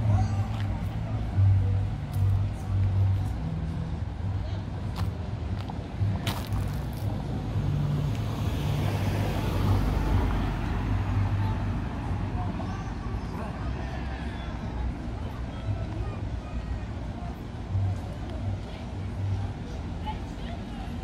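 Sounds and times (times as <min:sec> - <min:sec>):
low engine rumble: 0:00.0 - 0:21.0.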